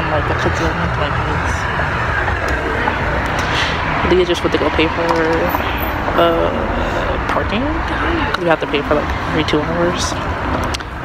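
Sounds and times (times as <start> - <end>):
vehicle noise rumble and hiss: 0.0 - 11.0.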